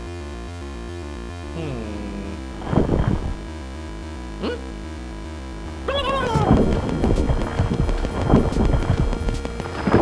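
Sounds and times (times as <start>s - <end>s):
dramatic score music: 0.1s - 10.0s
galloping percussion beat: 6.0s - 9.7s.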